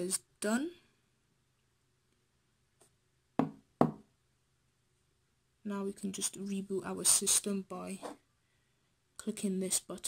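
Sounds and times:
phone knocking into wooden stand: 3.4 - 4.0.

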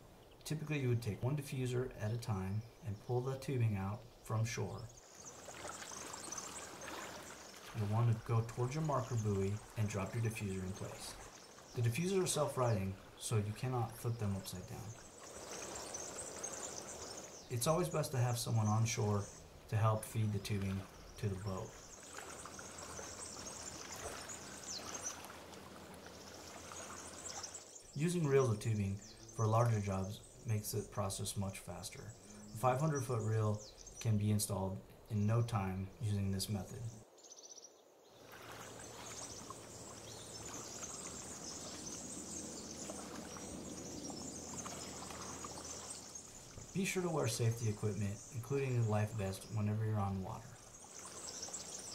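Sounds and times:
low hiss: 0.0 - 51.9.

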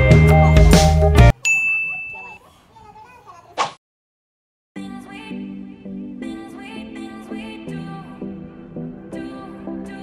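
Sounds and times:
background music: 0.0 - 1.3, 4.8 - 10.0
bell-like ding: 1.4 - 2.4.

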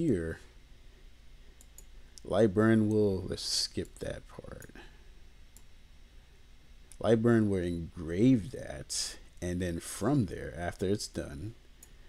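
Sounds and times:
computer mouse clicks: 1.6 - 2.3, 5.5 - 5.7.

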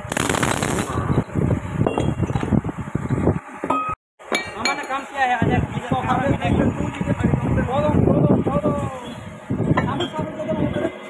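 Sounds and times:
loud hiss burst: 0.0 - 1.1.

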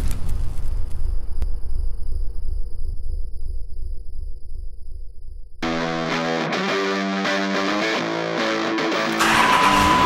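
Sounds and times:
deep steady rumble: 0.0 - 5.6.

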